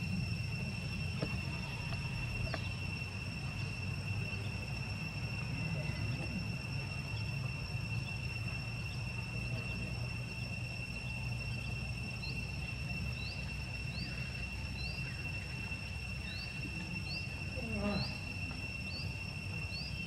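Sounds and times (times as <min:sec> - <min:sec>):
insects droning: 0:00.0 - 0:20.0.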